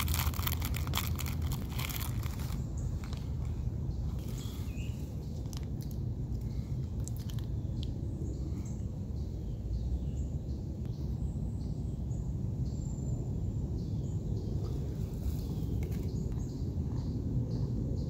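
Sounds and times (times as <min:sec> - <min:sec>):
low outdoor rumble: 0:00.0 - 0:18.0
small birds chirping: 0:00.0 - 0:18.0.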